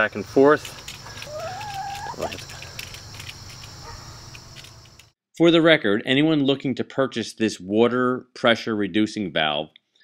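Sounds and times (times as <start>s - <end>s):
high insect drone: 0.0s - 5.1s
chicken call: 1.2s - 2.4s.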